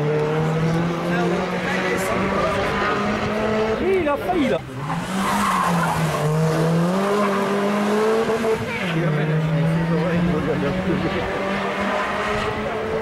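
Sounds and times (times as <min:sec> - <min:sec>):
rally car engine revving: 0:00.0 - 0:13.0.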